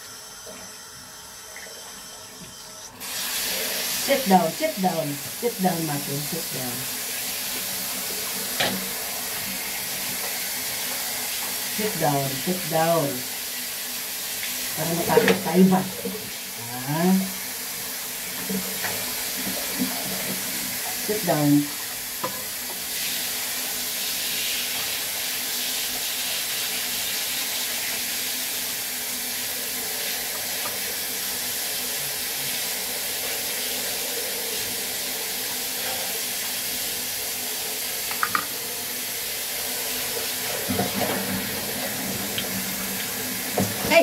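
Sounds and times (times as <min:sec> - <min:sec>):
shower water spraying on fur: 0:03.0 - 0:44.0.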